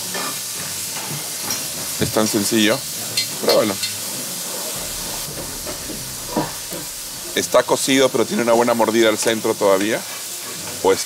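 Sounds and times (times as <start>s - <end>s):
low rumble: 4.8s - 9.1s.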